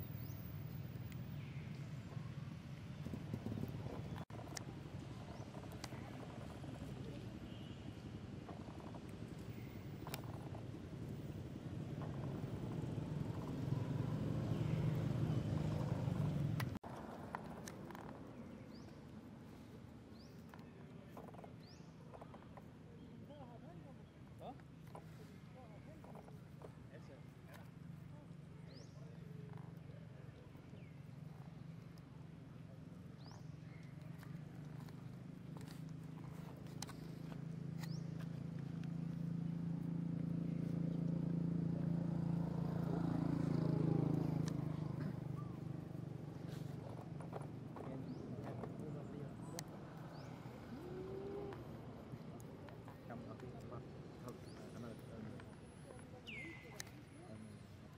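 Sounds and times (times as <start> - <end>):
low engine hum: 8.2 - 18.9, 28.1 - 57.9
bird chirping: 56.2 - 57.6.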